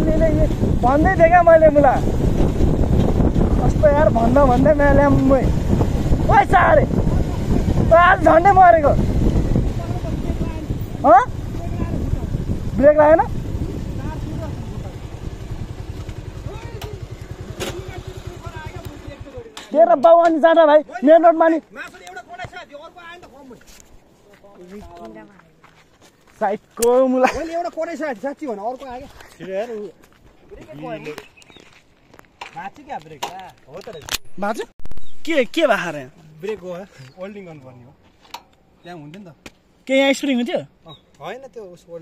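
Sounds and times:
people talking: 0:00.0 - 0:02.0, 0:03.6 - 0:05.5, 0:06.3 - 0:09.0, 0:14.0 - 0:15.0, 0:16.5 - 0:23.6, 0:26.5 - 0:31.3
motorcycle engine running: 0:00.0 - 0:19.6.

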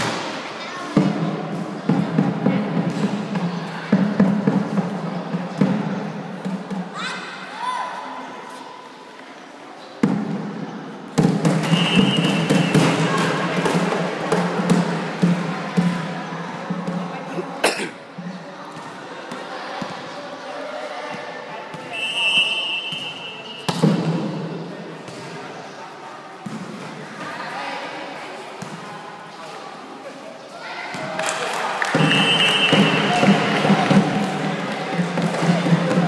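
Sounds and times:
spectators shouting and chattering: 0:00.0 - 0:36.0
referee's whistle: 0:11.6 - 0:13.1, 0:21.9 - 0:23.8, 0:32.0 - 0:33.3.

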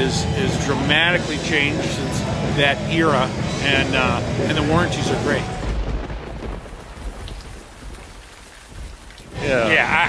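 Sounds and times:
rain falling: 0:05.0 - 0:10.0.

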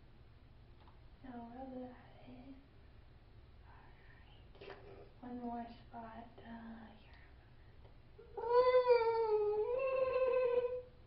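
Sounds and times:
long high-pitched vocal sound: 0:08.2 - 0:10.9.

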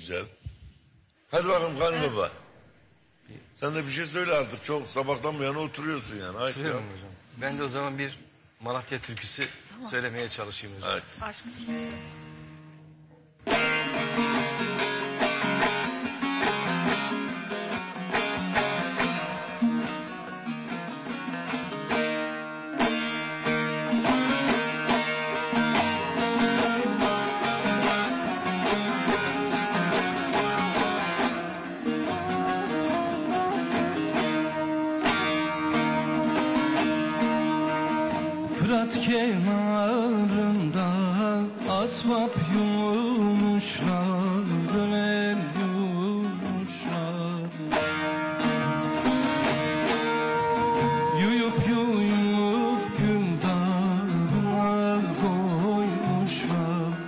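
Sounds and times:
plucked string instruments playing: 0:11.6 - 0:57.0.

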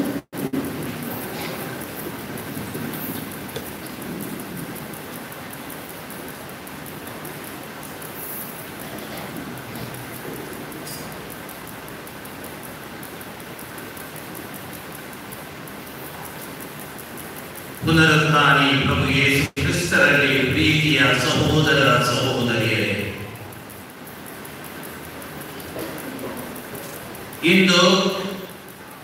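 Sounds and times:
background hiss: 0:00.0 - 0:29.0.

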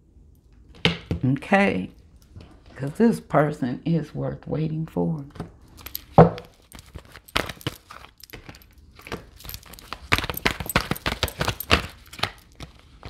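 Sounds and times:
cards being shuffled: 0:05.8 - 0:13.0.

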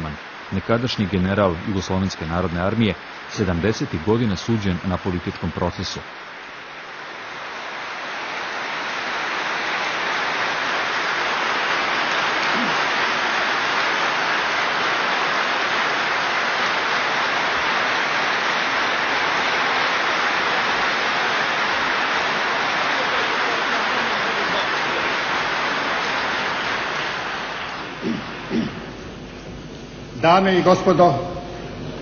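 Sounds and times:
large audience applauding: 0:00.0 - 0:29.0.

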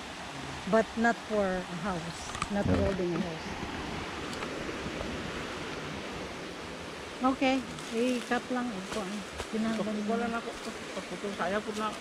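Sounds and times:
rushing outdoor background hiss: 0:00.0 - 0:12.0.

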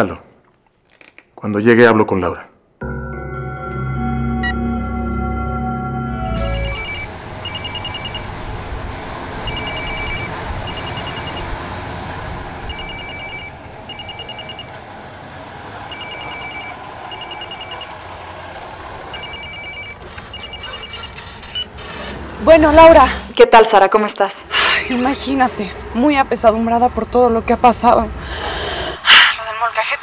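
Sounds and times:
music sting: 0:02.8 - 0:07.2
phone ringtone double rings: 0:02.9 - 0:08.3, 0:09.5 - 0:11.5, 0:12.7 - 0:14.8, 0:15.9 - 0:18.0, 0:19.1 - 0:21.2.

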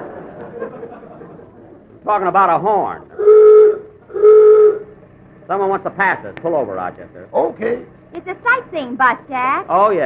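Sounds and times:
bus horn honking: 0:03.2 - 0:05.0.

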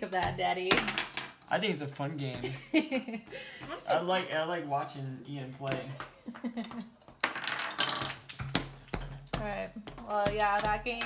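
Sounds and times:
plastic pieces clattering on wood: 0:07.2 - 0:08.5.

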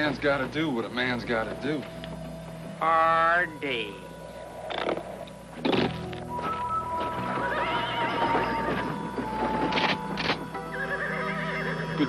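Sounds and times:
background music: 0:00.0 - 0:12.0
horse whinnying: 0:07.0 - 0:12.0.

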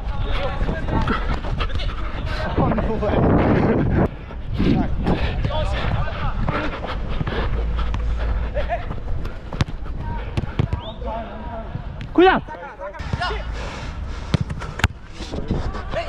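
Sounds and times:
steady low rumble: 0:00.0 - 0:10.6
ball being kicked: 0:09.5 - 0:10.9.

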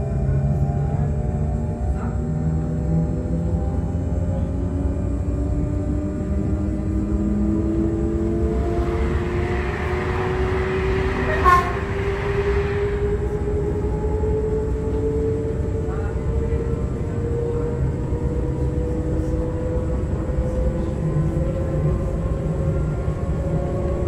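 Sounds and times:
train wheels rumbling on track: 0:00.0 - 0:24.0.

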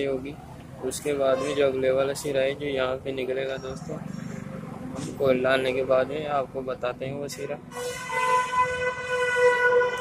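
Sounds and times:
long horn blast: 0:01.3 - 0:02.0, 0:07.3 - 0:10.0.

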